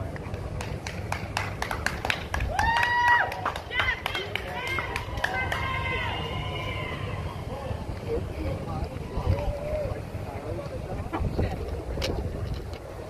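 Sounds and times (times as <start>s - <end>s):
street noise: 0.0s - 13.0s
voices calling out: 3.4s - 11.9s.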